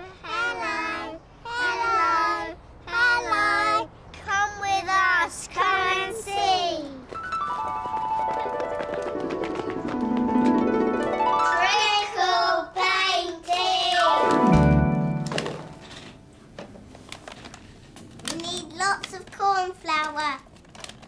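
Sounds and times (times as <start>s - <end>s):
musical jingle: 7.2s - 12.2s, 14.1s - 16.4s
child speaking: 18.3s - 20.5s.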